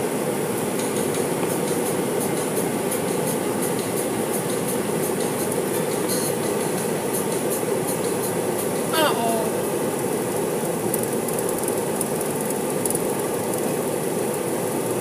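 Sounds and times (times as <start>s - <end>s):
steady mechanical rumble: 0.0s - 15.0s.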